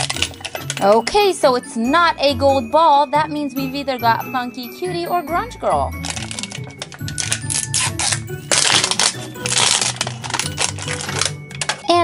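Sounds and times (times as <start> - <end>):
plastic wrapping crinkling: 0.0 - 1.4, 5.9 - 12.0
background music: 0.0 - 12.0.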